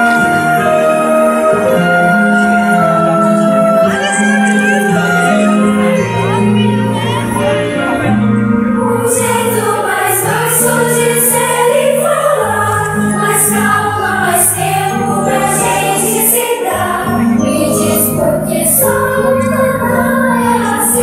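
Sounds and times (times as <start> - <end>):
choir singing: 0.0 - 21.0
instrumental accompaniment: 0.0 - 21.0.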